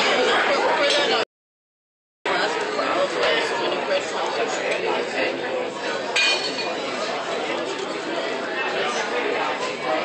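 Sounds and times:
tableware clinking: 0.0 - 1.2, 6.2 - 6.8
diners talking: 0.0 - 1.3, 2.3 - 10.0.

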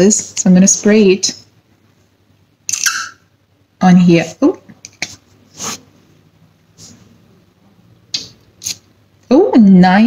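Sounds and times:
woman speaking: 0.0 - 1.5, 3.8 - 4.7, 9.3 - 10.0.

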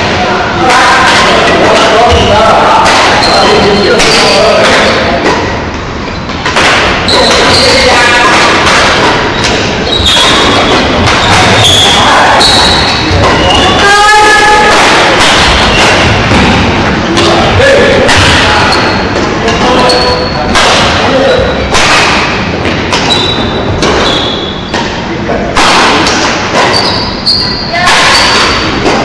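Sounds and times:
players' voices: 0.0 - 29.0
shoe squeaks: 3.1 - 4.6, 7.0 - 8.1, 9.2 - 14.2, 18.6 - 20.5, 23.0 - 24.9, 26.6 - 28.8
racket hitting shuttlecock: 6.3 - 13.6, 14.2 - 19.7, 20.5 - 27.2, 27.8 - 29.0.

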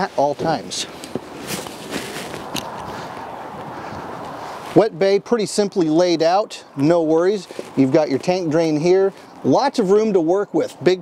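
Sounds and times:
background noise: 0.0 - 11.0
footsteps on asphalt: 0.1 - 5.0, 7.4 - 9.4.

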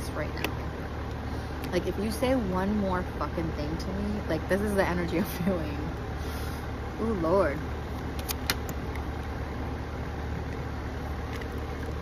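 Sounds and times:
low outdoor rumble: 0.0 - 12.0
card handling clicks: 8.2 - 9.0.

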